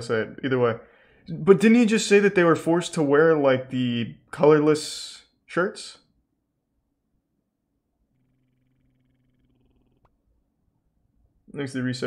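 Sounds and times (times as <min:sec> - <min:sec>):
faint low buzz: 0:06.2 - 0:12.0.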